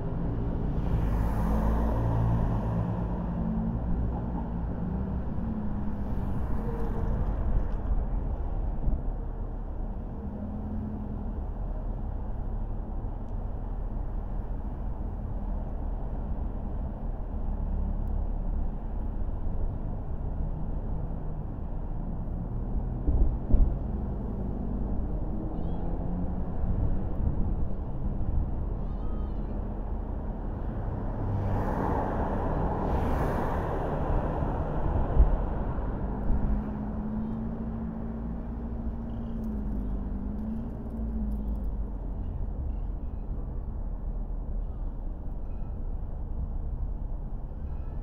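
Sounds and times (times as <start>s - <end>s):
low engine hum: 0.0s - 48.0s
road and tyre noise: 0.0s - 48.0s.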